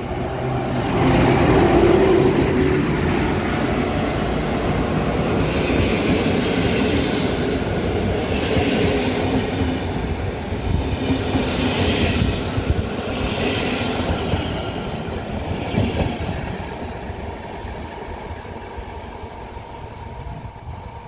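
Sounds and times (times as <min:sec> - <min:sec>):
train coaches rolling past: 0:00.0 - 0:21.0.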